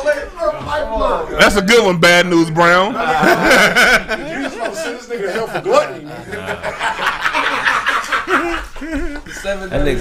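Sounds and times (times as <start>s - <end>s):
men laughing: 2.9s - 9.7s.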